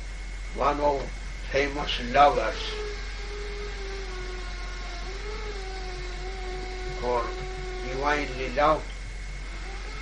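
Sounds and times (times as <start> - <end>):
faint steady whine and hum: 0.0 - 10.0.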